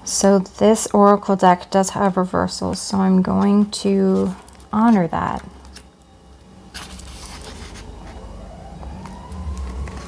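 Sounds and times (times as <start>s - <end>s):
faint rising tone: 7.8s - 10.0s.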